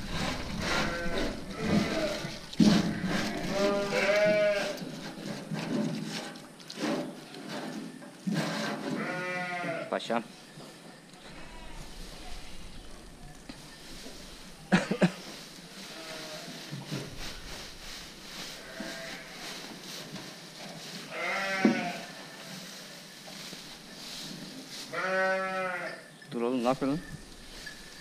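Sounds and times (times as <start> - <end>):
sheep bleating: 0.6 - 4.8, 9.0 - 9.9, 21.1 - 22.2, 24.9 - 26.0.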